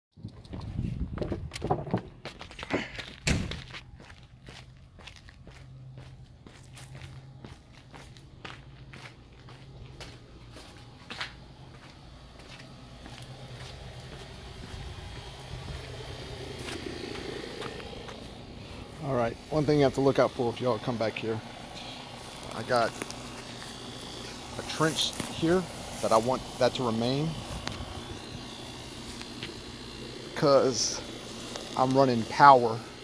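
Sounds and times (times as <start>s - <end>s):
footsteps walking: 0.2s - 26.6s, 27.2s - 29.7s
low steady hum: 2.1s - 33.0s.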